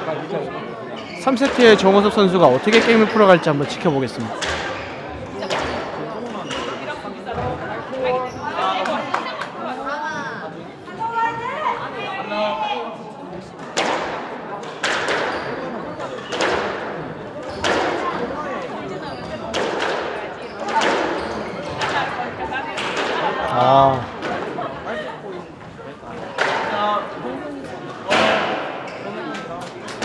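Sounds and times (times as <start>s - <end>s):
squash ball hitting racket and wall: 19.5s - 23.3s.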